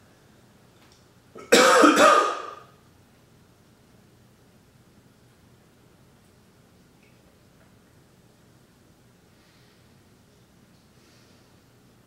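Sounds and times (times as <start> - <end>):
man coughing: 1.4 - 2.7.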